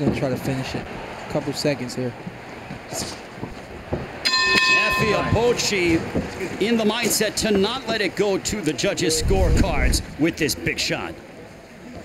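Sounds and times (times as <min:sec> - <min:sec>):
boxing bell ringing: 0:04.3 - 0:05.8.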